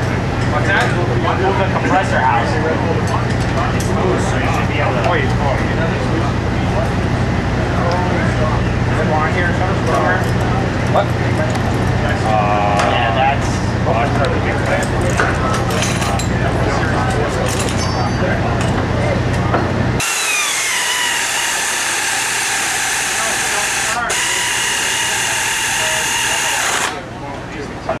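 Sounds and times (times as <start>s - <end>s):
low machine hum: 0.0s - 28.0s.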